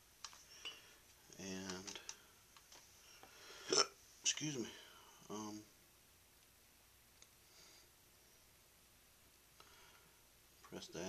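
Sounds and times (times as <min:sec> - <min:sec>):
faint click: 0:07.2 - 0:07.4.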